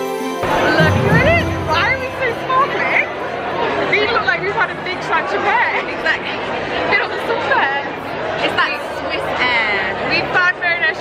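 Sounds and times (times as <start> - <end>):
crowd chatter: 0.4 - 11.0.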